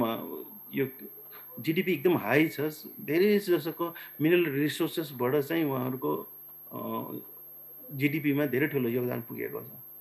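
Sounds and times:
man speaking: 0:00.0 - 0:07.3, 0:07.9 - 0:09.8.

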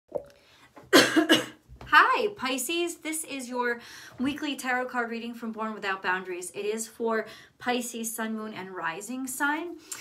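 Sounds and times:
woman coughing: 0:00.9 - 0:01.6
woman speaking: 0:01.9 - 0:09.8.

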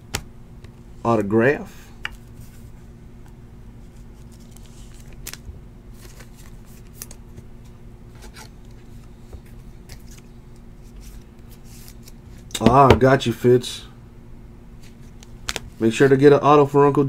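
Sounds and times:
steady low hum: 0:00.0 - 0:17.0
trading cards clicking and rustling: 0:04.2 - 0:07.4, 0:08.2 - 0:13.2, 0:14.8 - 0:16.1.

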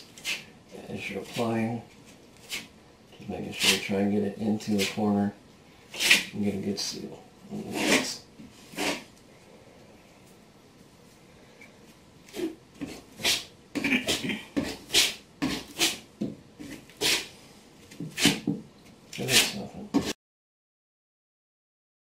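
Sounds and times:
trowel scraping mortar: 0:00.1 - 0:00.5, 0:05.9 - 0:06.3, 0:07.6 - 0:09.1, 0:12.3 - 0:16.0, 0:16.6 - 0:17.3, 0:18.0 - 0:18.5, 0:19.2 - 0:20.2.

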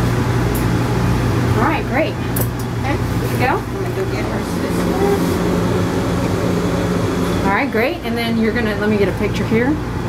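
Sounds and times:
low machine hum: 0:00.0 - 0:10.0
person speaking: 0:03.4 - 0:05.5.

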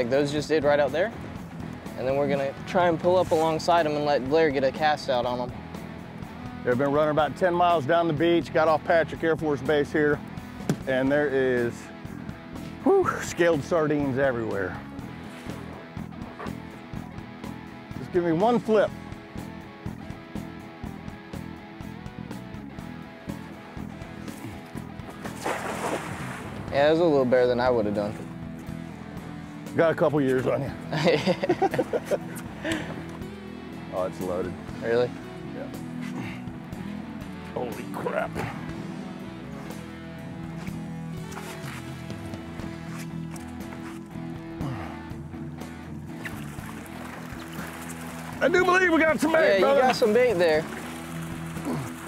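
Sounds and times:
strummed guitar music: 0:00.0 - 0:52.0.

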